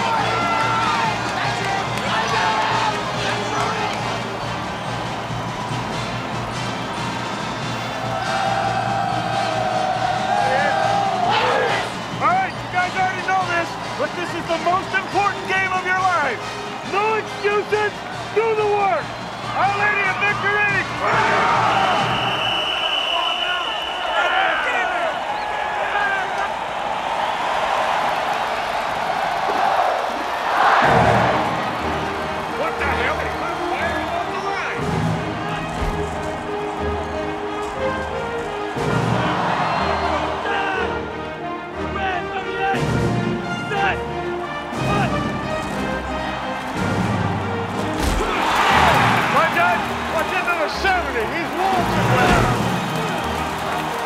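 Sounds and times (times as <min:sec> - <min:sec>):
film score music: 0:00.0 - 0:22.8, 0:26.7 - 0:54.0
stadium crowd cheering: 0:00.0 - 0:54.0.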